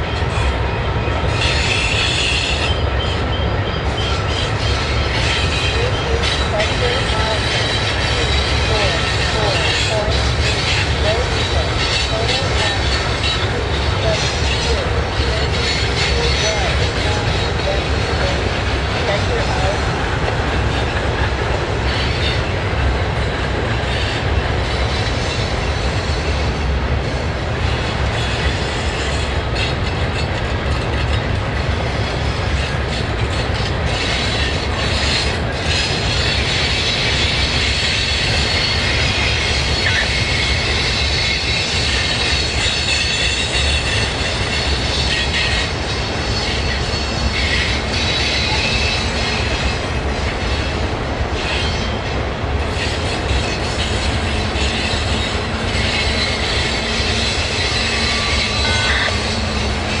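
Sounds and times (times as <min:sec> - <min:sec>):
wheels squealing high-pitched: 0:00.2 - 0:18.4, 0:32.6 - 0:50.7, 0:51.4 - 1:00.0.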